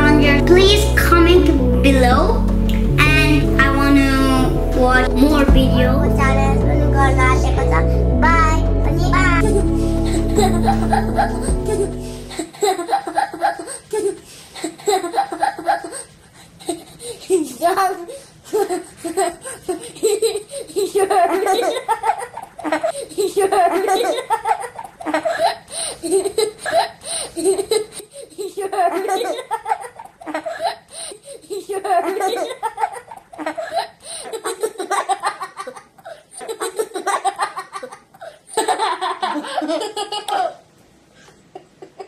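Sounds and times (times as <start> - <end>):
children laughing and giggling: 7.3 - 40.7.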